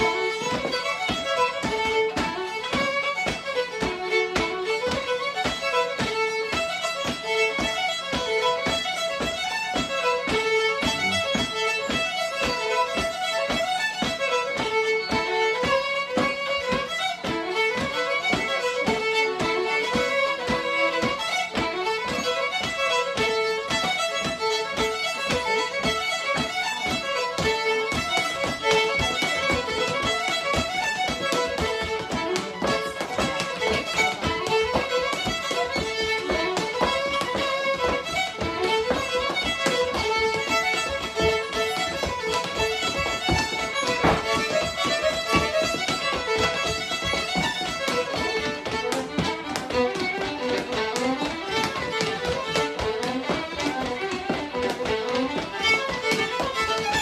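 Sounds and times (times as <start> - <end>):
two fiddles playing fast tune: 0.0 - 57.0.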